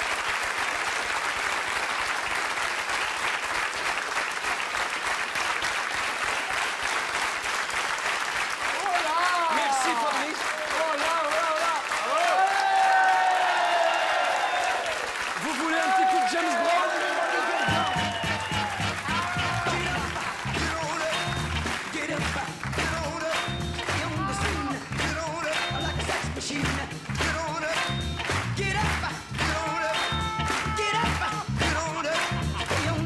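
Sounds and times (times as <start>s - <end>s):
audience applauding: 0.0s - 33.0s.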